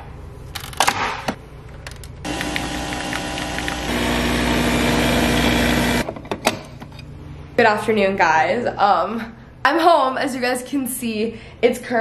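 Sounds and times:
coffee machine motor hum: 0:02.2 - 0:06.1.

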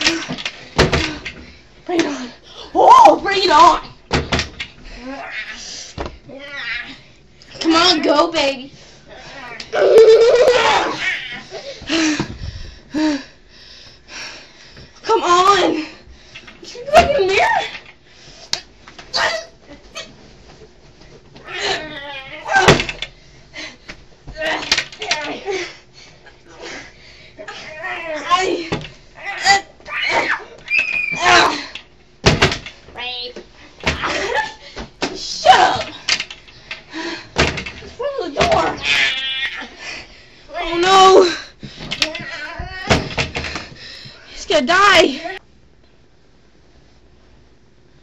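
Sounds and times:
young people crying out: 0:09.7 - 0:11.6, 0:27.5 - 0:31.8.

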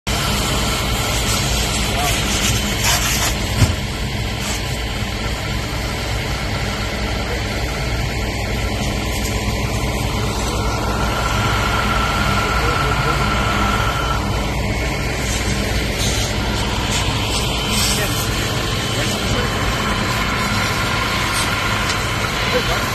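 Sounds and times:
water spraying from hose: 0:00.1 - 0:06.7, 0:08.5 - 0:22.9
fire truck engine running: 0:00.1 - 0:22.9.

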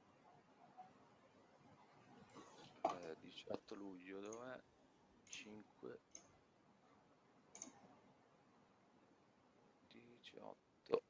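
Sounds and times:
short faint clicks: 0:07.5 - 0:07.8.

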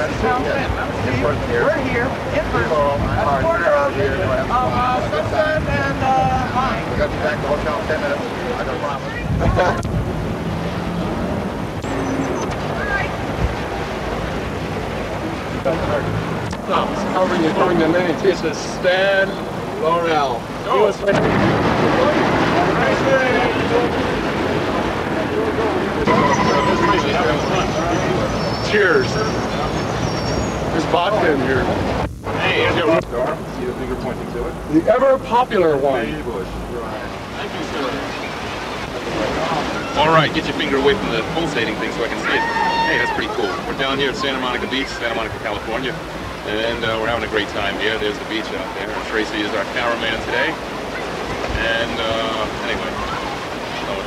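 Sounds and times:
man talking: 0:00.0 - 0:09.8, 0:15.6 - 0:24.3, 0:25.2 - 0:29.8, 0:30.7 - 0:38.1, 0:39.1 - 0:50.6, 0:51.5 - 0:53.1, 0:53.8 - 0:54.0
cars passing: 0:00.0 - 0:54.0
indistinct voices: 0:00.0 - 0:54.0.

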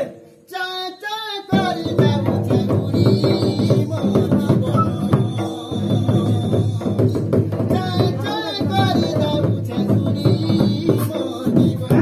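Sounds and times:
person singing: 0:00.0 - 0:12.0
barrel drum beaten with stick: 0:01.5 - 0:12.0.

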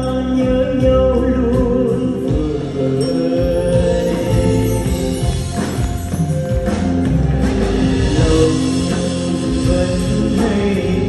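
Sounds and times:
man singing: 0:00.0 - 0:05.4, 0:08.0 - 0:11.0
bass guitar: 0:00.0 - 0:11.0
drums: 0:00.0 - 0:11.0
electric guitars: 0:01.5 - 0:11.0.

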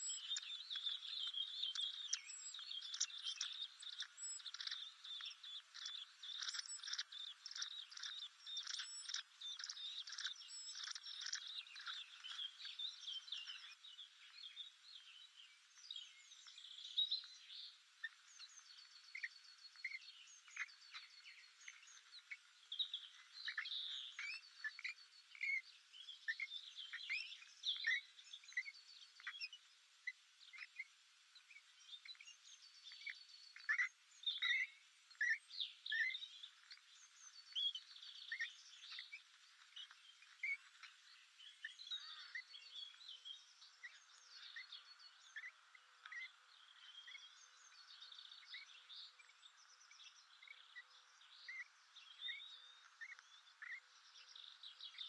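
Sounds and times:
small birds chirping: 0:00.0 - 0:55.0.

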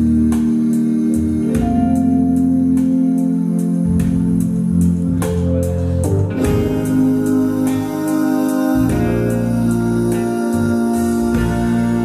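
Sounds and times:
electronic organ chords: 0:00.0 - 0:12.0.

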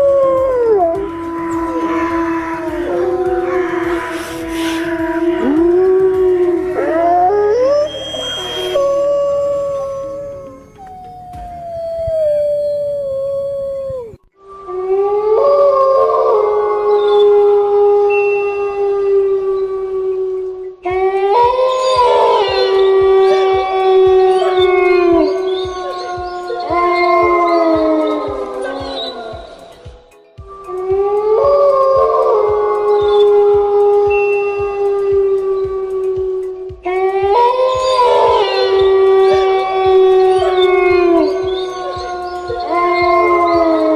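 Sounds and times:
low thumping beat: 0:00.0 - 0:14.4, 0:20.4 - 0:43.9
wolves howling: 0:00.0 - 0:43.9.

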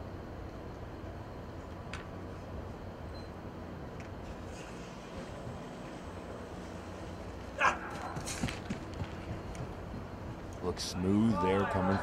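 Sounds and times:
indoor dome background noise: 0:00.0 - 0:12.0.

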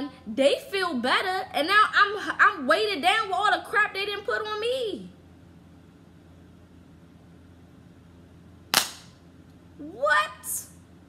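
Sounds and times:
sharp loud crack: 0:08.7 - 0:09.2.

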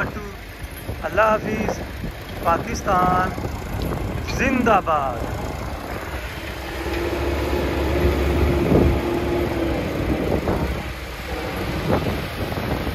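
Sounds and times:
tractor diesel engine running: 0:00.0 - 0:12.9
steady whine: 0:01.0 - 0:12.9.

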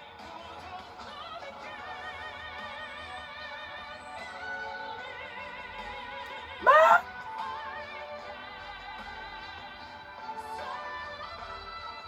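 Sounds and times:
man singing with vibrato: 0:06.6 - 0:07.0.

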